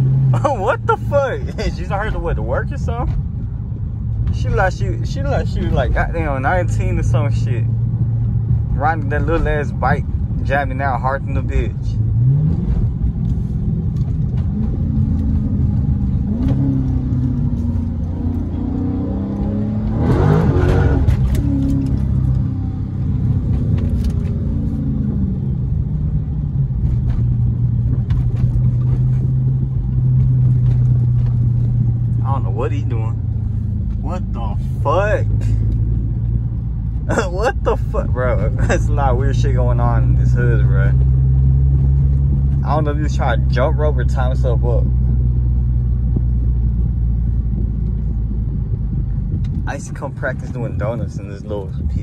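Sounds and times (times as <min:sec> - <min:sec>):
car engine from inside cabin: 0:00.0 - 0:52.0.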